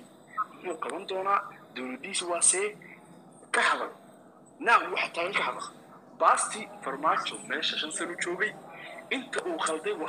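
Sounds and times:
person speaking: 0.3 - 10.0.

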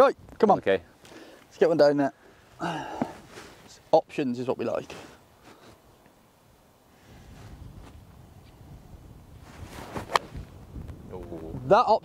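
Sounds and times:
wind buffeting microphone: 7.0 - 12.0
golf club swish: 9.4 - 10.5
golf club striking ball: 10.1 - 10.3.

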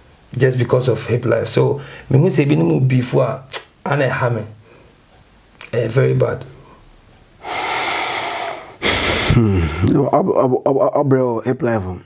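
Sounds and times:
sharp breath: 7.4 - 9.4
person sighing: 7.4 - 10.0.

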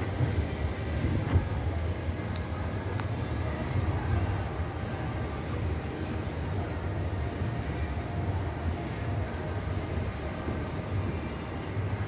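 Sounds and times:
low outdoor ambient rumble: 0.0 - 12.0.

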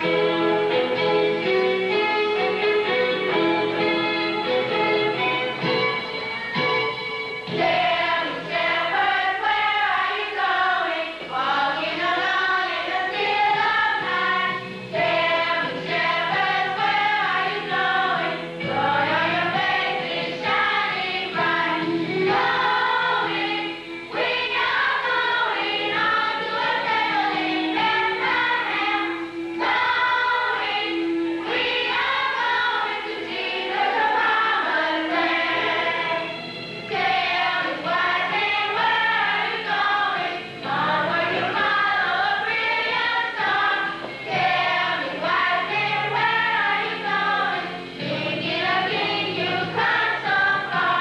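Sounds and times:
women and children choir singing: 7.5 - 51.0.

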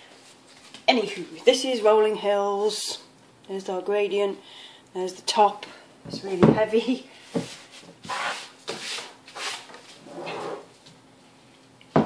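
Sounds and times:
soap scraping across worktop: 7.5 - 10.7.

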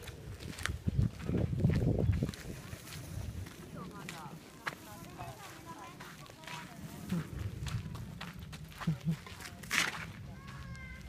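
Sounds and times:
footsteps on stone steps and gravel: 0.0 - 11.0.

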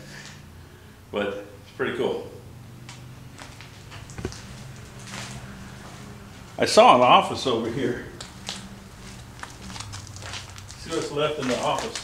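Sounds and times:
low steady hum: 0.0 - 12.0
footsteps on concrete: 3.4 - 6.0
soft thump: 4.2 - 4.4.

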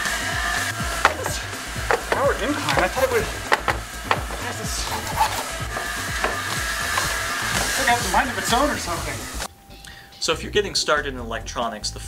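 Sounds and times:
background music: 0.0 - 12.0
jogger's footfalls: 0.8 - 8.1
treadmill running: 0.8 - 9.5
sharp knocks: 1.0 - 7.9.

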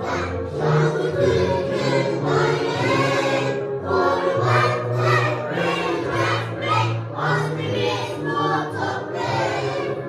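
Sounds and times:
children singing together: 0.0 - 10.0.

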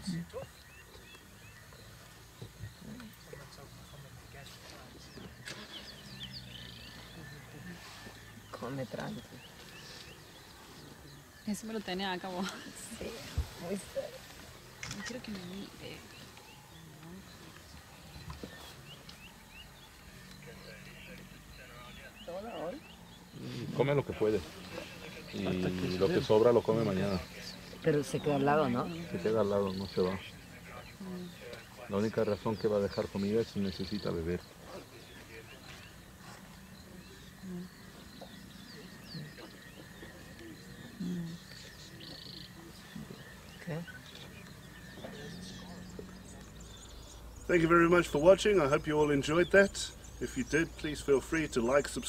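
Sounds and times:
small birds chirping: 0.0 - 52.0
low voices murmuring: 12.3 - 52.0.

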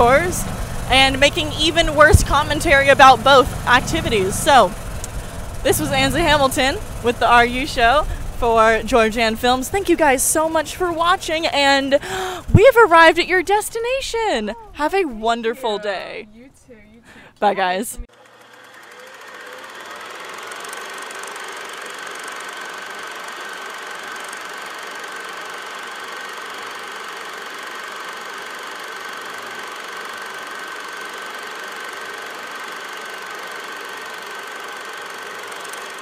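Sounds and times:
film projector whirring: 0.0 - 14.8, 18.0 - 36.0
thin steady whine: 0.0 - 17.0.

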